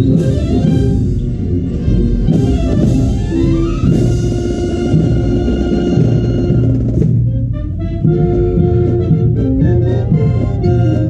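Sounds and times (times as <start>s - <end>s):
marching brass band playing: 0.0s - 11.0s.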